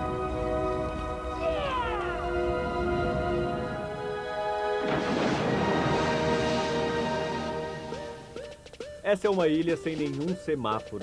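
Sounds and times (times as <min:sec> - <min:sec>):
orchestral score with held chords: 0:00.0 - 0:08.5.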